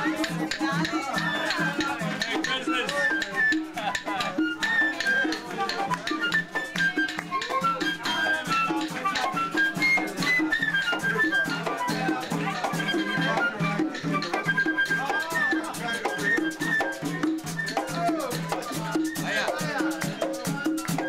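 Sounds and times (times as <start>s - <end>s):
flute melody: 0.0s - 21.0s
hand drums: 0.0s - 21.0s
shakers: 0.0s - 21.0s
voices: 0.0s - 21.0s.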